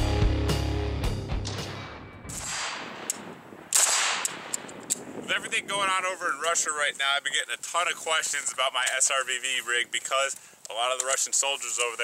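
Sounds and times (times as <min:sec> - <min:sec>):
rifle shot: 0:01.4 - 0:05.2.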